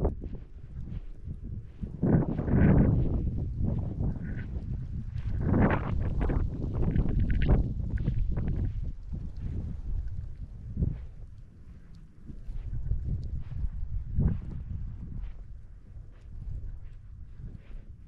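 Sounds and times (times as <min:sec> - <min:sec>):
wind rumbling on microphone: 0:00.0 - 0:18.0.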